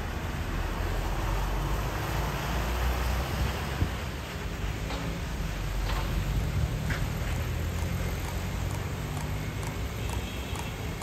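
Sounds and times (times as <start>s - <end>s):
passing cars and motorbikes: 5.2s - 11.0s.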